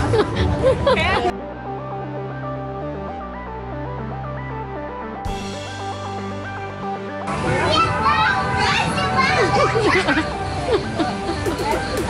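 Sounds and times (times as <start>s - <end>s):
stepping melody over bass notes: 11.5s - 12.0s.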